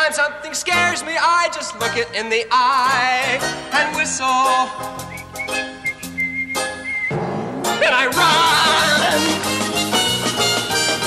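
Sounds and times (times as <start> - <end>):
band accompaniment: 2.6 - 11.0
person whistling: 5.0 - 7.2.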